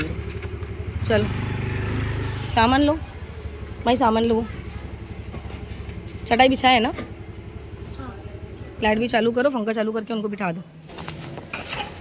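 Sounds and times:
motorcycle engine idling: 0.0s - 10.1s.

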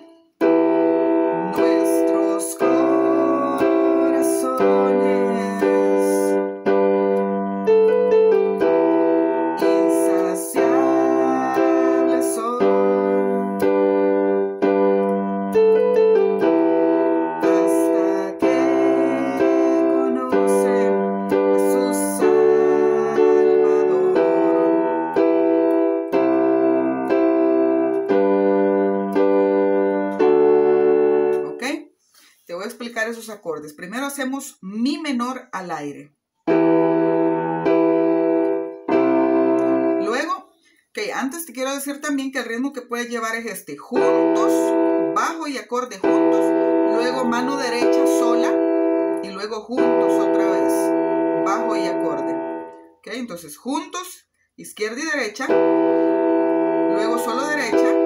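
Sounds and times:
digital piano playing worship song: 0.0s - 34.6s, 36.5s - 58.0s.

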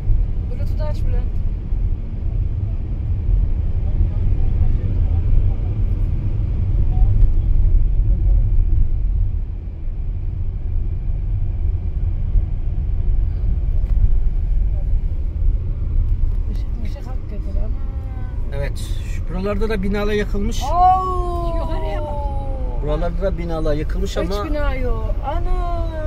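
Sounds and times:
car engine and road rumble: 0.0s - 26.0s.

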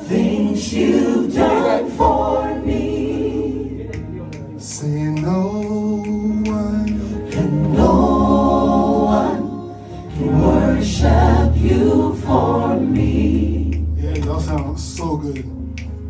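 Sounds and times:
gospel vocalists singing in harmony: 0.0s - 14.5s.

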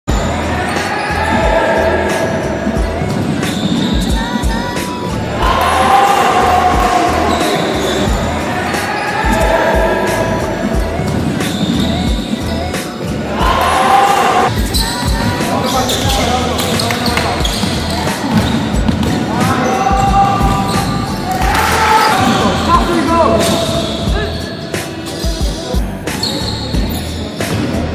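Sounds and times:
steady background music: 0.1s - 27.9s
basketball bouncing on gym floor: 15.9s - 21.5s.

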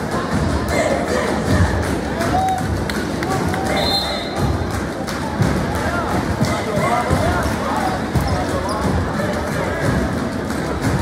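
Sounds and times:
crowd chatter and voices: 0.0s - 11.0s.

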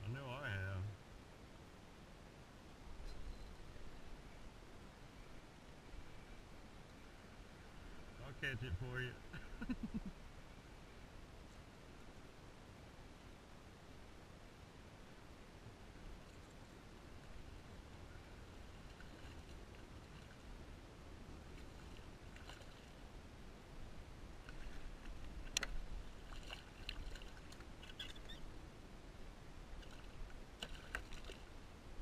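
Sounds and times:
faint wind rumble: 0.0s - 32.0s
fish splashing and thrashing: 18.7s - 20.5s, 21.6s - 23.1s, 24.4s - 28.4s, 29.8s - 31.5s.

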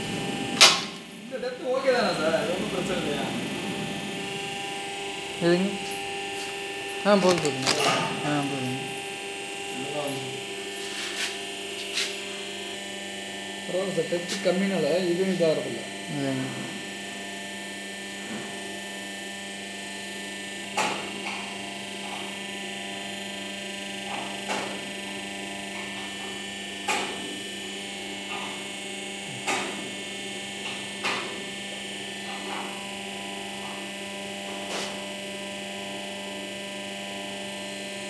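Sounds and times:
machine electrical hum: 0.0s - 38.0s.

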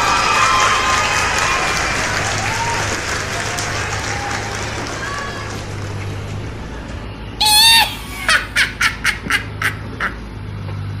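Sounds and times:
loud squawk: 7.4s - 10.2s.

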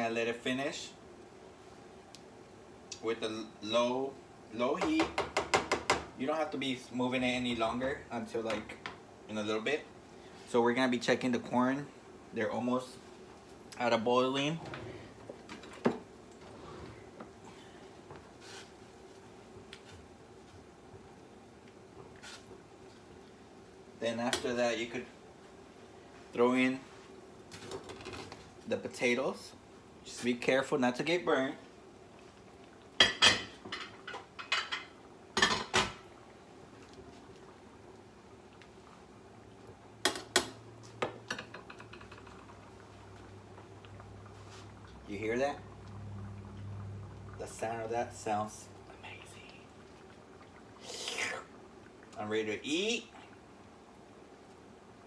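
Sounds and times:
soft hiss: 0.0s - 4.9s, 6.1s - 55.0s
faint steady background noise: 0.0s - 55.0s
faint steady hum: 0.0s - 55.0s.

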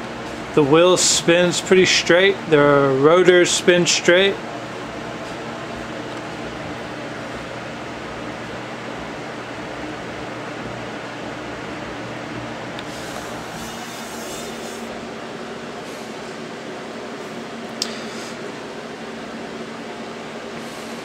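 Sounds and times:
steady machine hum: 0.0s - 21.0s
hissing rustle: 12.8s - 14.9s.

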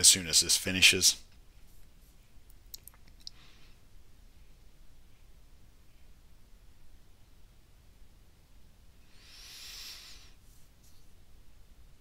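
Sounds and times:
faint soft hiss: 0.0s - 12.0s.

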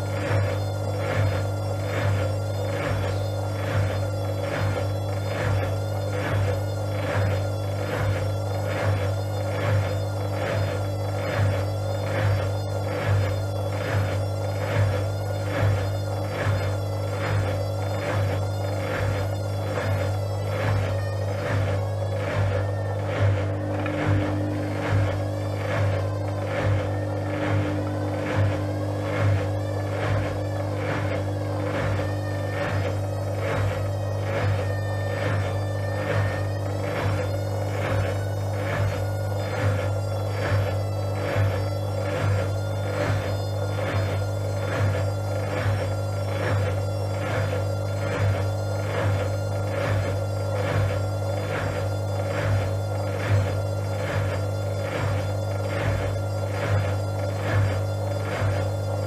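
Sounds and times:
washing machine drum turning: 0.0s - 59.0s.

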